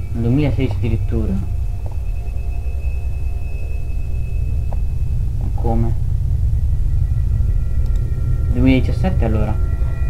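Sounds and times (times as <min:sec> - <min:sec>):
high-pitched whine: 0:00.0 - 0:10.0
microphone background rumble: 0:00.0 - 0:10.0.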